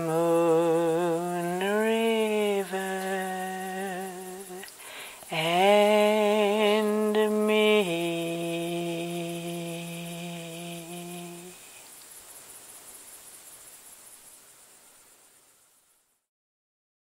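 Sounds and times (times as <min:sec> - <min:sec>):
woman singing held notes: 0:00.0 - 0:11.8
faint hiss: 0:00.0 - 0:16.3.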